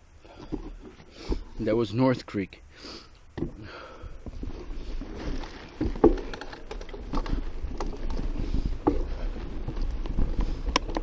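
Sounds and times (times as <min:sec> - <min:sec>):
bike rattling and knocking: 0:03.4 - 0:11.0
bike tyres rumbling on dirt: 0:03.4 - 0:11.0.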